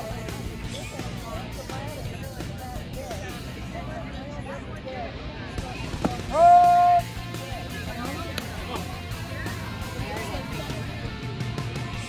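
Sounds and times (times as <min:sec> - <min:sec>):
background music: 0:00.0 - 0:12.0
voices: 0:00.0 - 0:12.0
loud drawn-out shout: 0:06.3 - 0:07.1.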